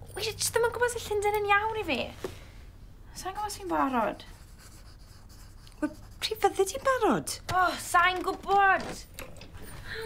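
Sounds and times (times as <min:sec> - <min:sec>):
pencil scratching on paper: 0:03.7 - 0:07.1.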